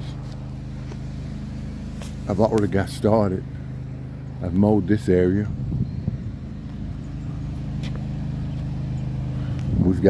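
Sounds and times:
engine humming steadily: 0.0 - 10.0.

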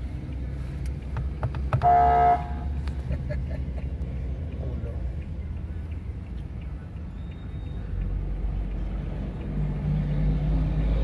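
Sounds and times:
vehicle engine rumble: 0.0 - 11.0
car horn toot: 1.7 - 2.8.

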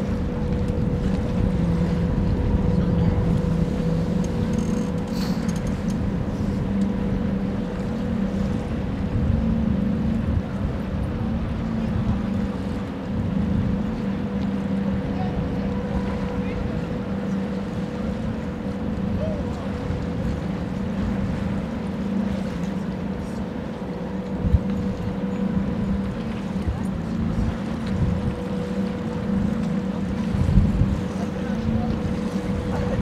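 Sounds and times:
ship machinery drone: 0.0 - 33.0
wind buffeting microphone: 0.0 - 33.0.

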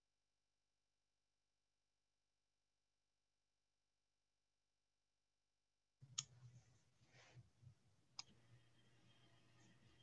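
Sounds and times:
faint low hum: 6.0 - 10.0.

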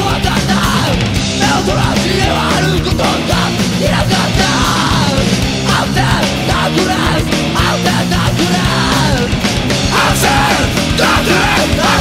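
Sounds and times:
hardcore punk band playing: 0.0 - 12.0
yelled lead vocal: 0.0 - 12.0.

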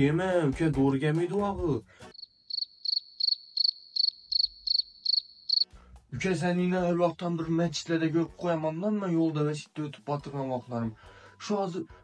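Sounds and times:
cricket chirping: 2.1 - 5.7.

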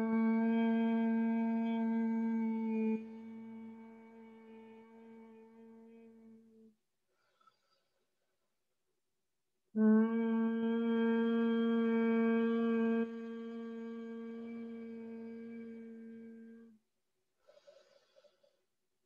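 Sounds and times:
person humming a note: 9.9 - 16.7.

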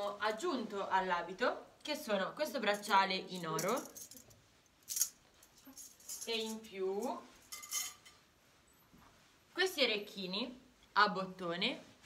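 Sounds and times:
person speaking: 0.0 - 4.0
metallic clinking of jewelry: 2.7 - 8.2.

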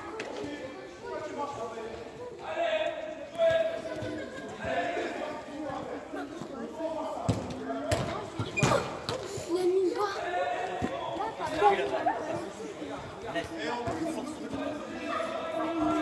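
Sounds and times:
children's voices: 8.8 - 10.5.

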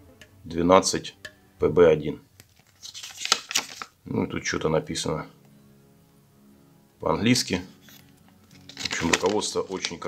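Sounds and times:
paper rustling: 2.4 - 4.0, 7.8 - 10.0.

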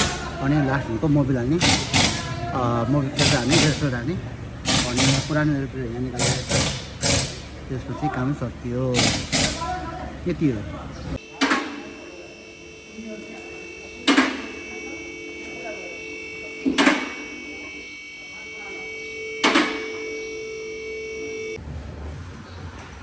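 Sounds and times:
machine hum: 0.0 - 22.3.

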